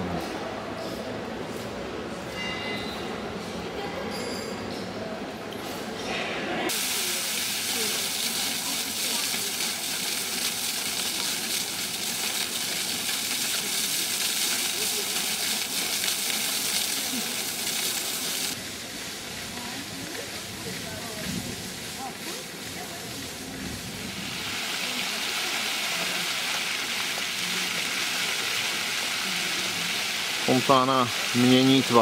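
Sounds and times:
fountain water jet splashing: 6.7 - 32.0.

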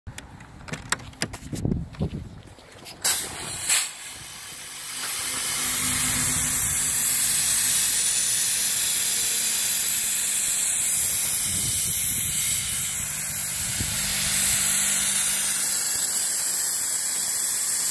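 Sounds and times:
fog machine blasts: 3.0 - 17.9
fog machine hissing: 3.1 - 17.9.

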